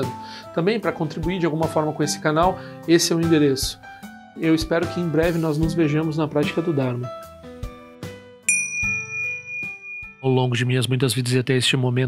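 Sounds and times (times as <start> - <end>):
bell ringing high tone: 8.5 - 10.4.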